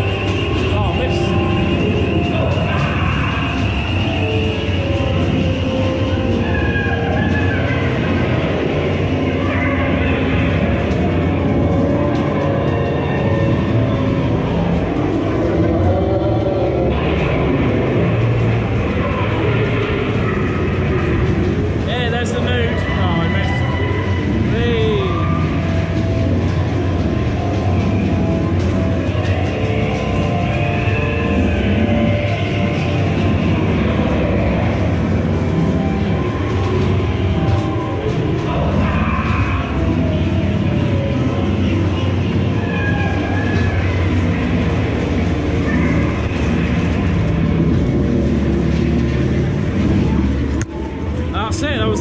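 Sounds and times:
ride car rumbling on track: 0.0 - 52.0
ride music and sound effects: 0.0 - 52.0.

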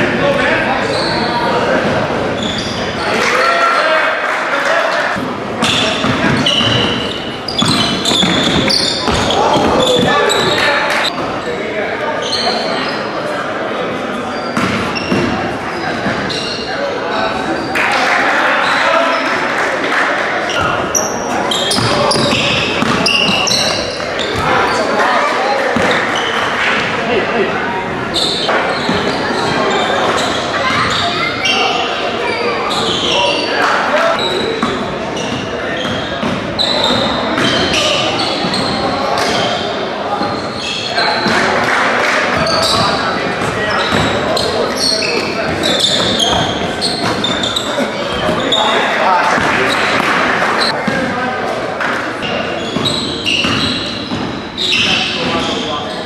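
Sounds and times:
sneakers squeaking: 0.0 - 3.7, 4.9 - 19.5, 20.4 - 51.2, 51.8 - 56.0
voices of players and spectators: 0.0 - 56.0.

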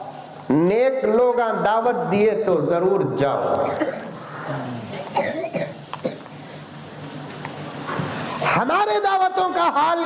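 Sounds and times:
man clearing throat: 3.6 - 4.2, 5.1 - 6.2.

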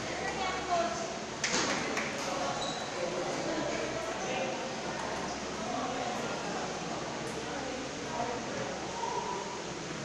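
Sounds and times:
voices chattering in a hall: 0.0 - 10.0.

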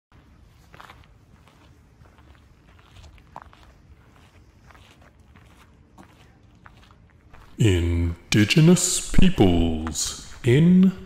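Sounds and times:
footsteps outdoors: 0.1 - 11.0
low background noise: 0.1 - 11.0.

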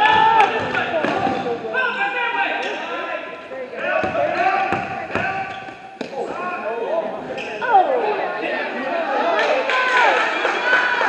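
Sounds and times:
basketball bouncing on gym floor: 4.0 - 6.1.

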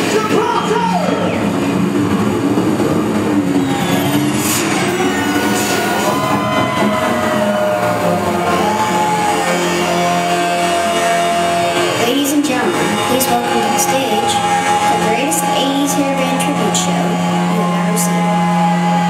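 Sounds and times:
drums: 0.0 - 16.9
bass guitar: 0.0 - 19.0
electric guitar: 0.0 - 19.0.

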